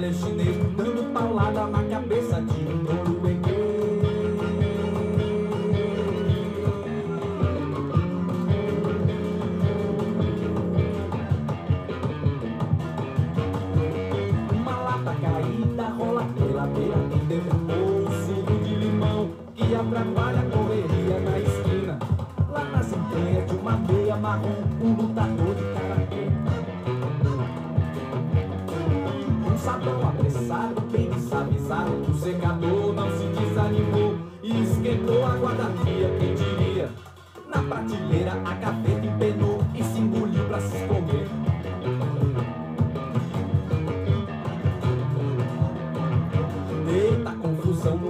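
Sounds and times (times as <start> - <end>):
guitar and bass song over beat: 0.0 - 48.0.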